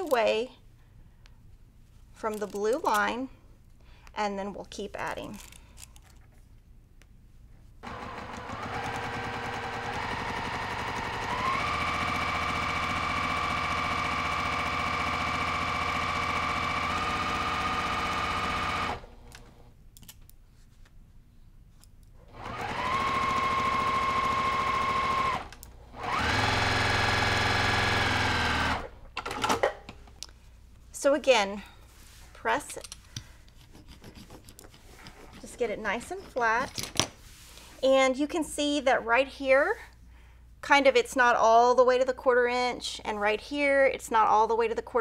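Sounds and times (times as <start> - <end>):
sewing machine stitching: 7.8 - 19.6, 22.3 - 28.9.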